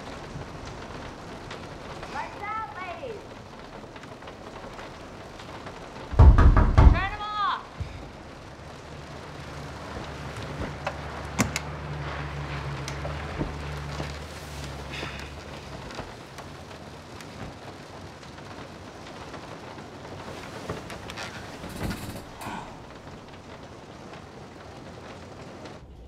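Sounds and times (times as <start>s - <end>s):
steady rain: 0.0s - 26.0s.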